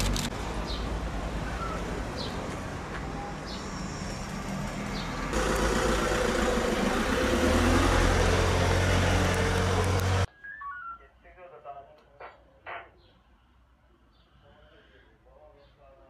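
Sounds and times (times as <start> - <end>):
street ambience: 0.0 - 16.0
van engine running: 4.9 - 10.3
bird chirps: 10.3 - 11.1.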